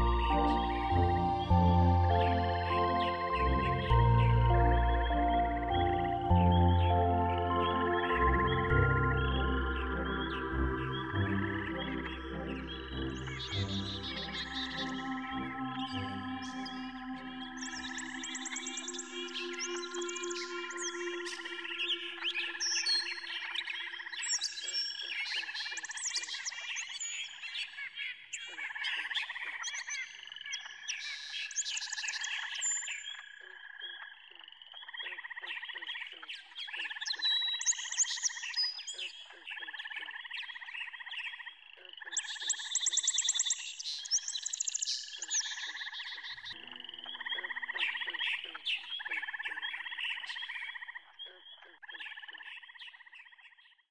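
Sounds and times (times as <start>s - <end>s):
birds chirping: 0.0s - 27.6s, 34.8s - 53.6s
frogs calling in trills: 14.2s - 53.8s.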